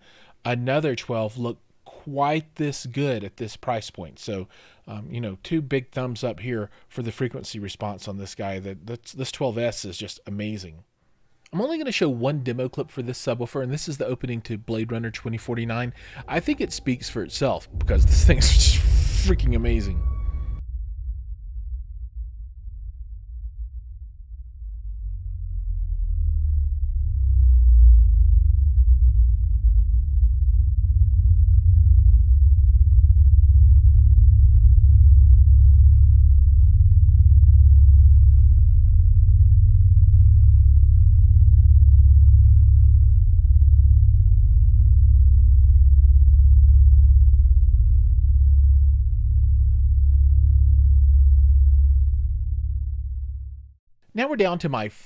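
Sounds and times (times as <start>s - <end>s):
deep bass rumble from subwoofer: 15.9s - 53.9s.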